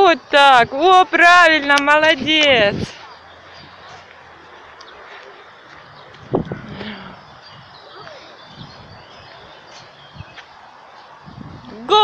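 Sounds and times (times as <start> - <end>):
faint bird chirps: 5.9 - 10.5.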